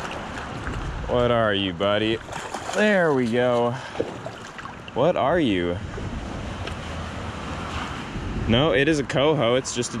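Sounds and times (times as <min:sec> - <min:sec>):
wind noise on microphone: 0:00.0 - 0:02.7, 0:05.3 - 0:09.3
creek water flowing: 0:00.0 - 0:08.1.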